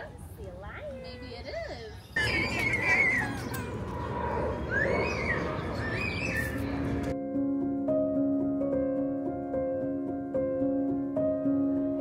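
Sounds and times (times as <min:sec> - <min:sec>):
birds calling: 0:01.3 - 0:07.2.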